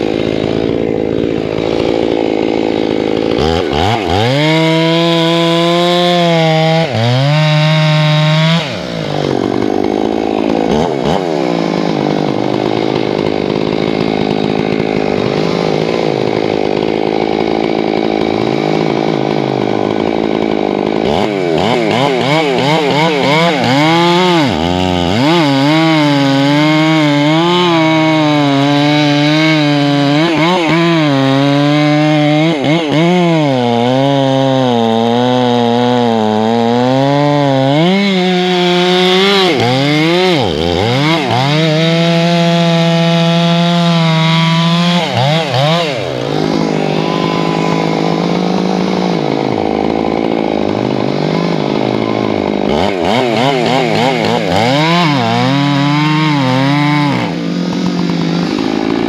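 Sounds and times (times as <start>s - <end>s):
chainsaw cutting log: 0.0s - 59.0s.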